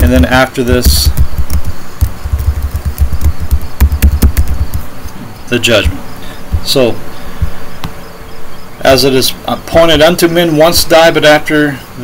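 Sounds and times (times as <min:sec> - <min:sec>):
man speaking: 0:00.0 - 0:01.2, 0:05.5 - 0:07.0, 0:08.8 - 0:11.8
steady buzzing hiss: 0:00.0 - 0:12.0.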